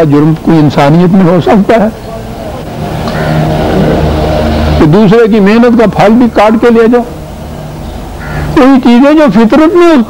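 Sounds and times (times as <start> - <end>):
low engine-like hum: 0.4 - 8.6
low rumble: 2.3 - 8.2.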